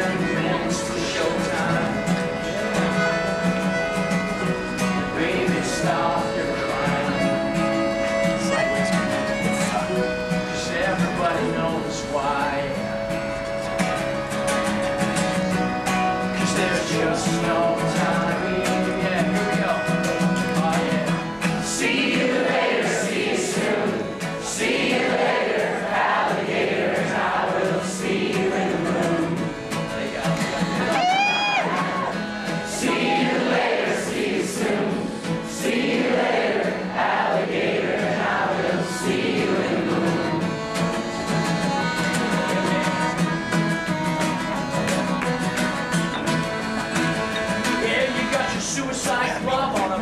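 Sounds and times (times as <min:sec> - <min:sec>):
audience singing along: 0:00.0 - 0:08.4, 0:16.2 - 0:19.2, 0:21.1 - 0:30.1, 0:31.6 - 0:41.4
accordion: 0:00.0 - 0:50.0
acoustic guitar: 0:00.0 - 0:50.0
rising whoop: 0:30.9 - 0:32.2.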